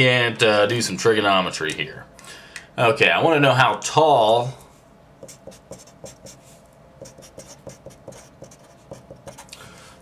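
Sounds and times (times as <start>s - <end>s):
marker writing on paper: 5.2s - 9.5s.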